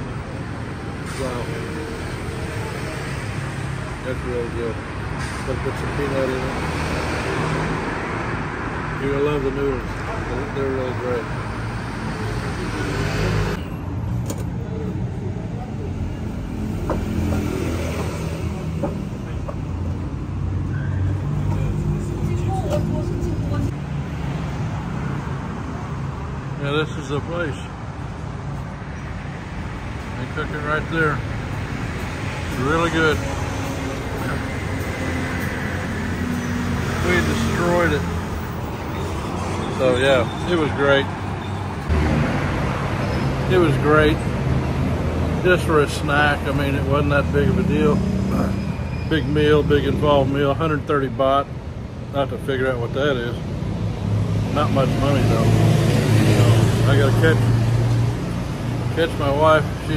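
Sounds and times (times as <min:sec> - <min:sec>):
cars passing with low rumble: 0:00.0 - 0:59.9.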